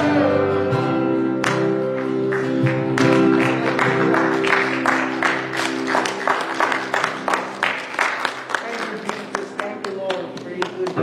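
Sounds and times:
acoustic guitar strumming: 0.0s - 7.6s
electric keyboard chords: 0.0s - 11.0s.

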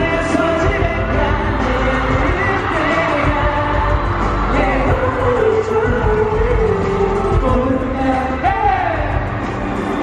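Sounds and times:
man singing into microphone: 0.0s - 9.5s
loud backing music: 0.0s - 10.0s.

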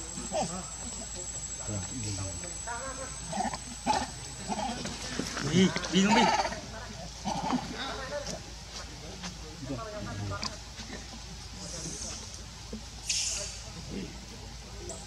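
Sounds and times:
baby monkey crying: 6.0s - 6.6s.

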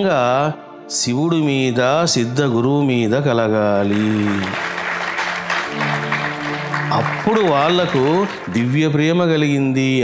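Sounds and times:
background music: 0.0s - 10.0s
large audience clapping: 3.8s - 9.2s.

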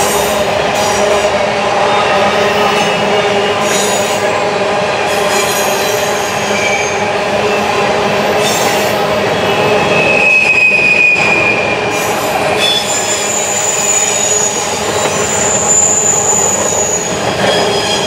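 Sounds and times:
freight train rumble and clatter: 0.0s - 18.0s
train wheels squealing on rail: 0.0s - 18.0s.

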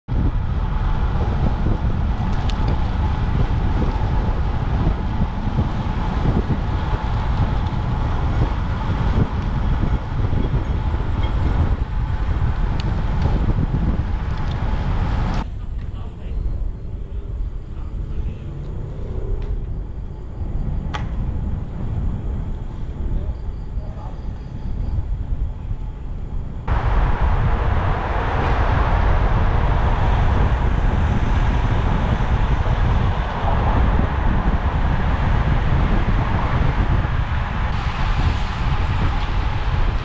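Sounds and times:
road rumble: 0.0s - 40.0s
wind buffeting microphone: 0.0s - 40.0s.

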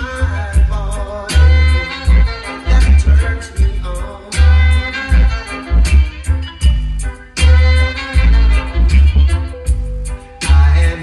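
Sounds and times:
loud music with heavy bass: 0.0s - 11.0s.

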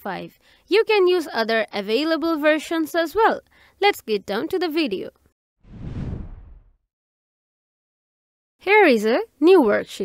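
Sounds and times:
whoosh: 5.6s - 6.8s.

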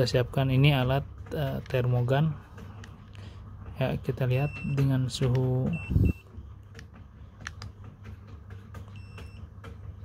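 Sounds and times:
thermometer electronic beep: 5.7s - 6.2s.

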